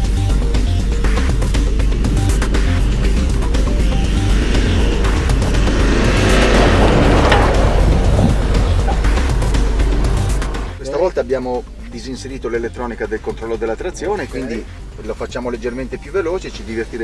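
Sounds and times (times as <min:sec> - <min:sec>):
car engine and tyre noise: 0:00.0 - 0:10.8
background music: 0:00.0 - 0:17.0.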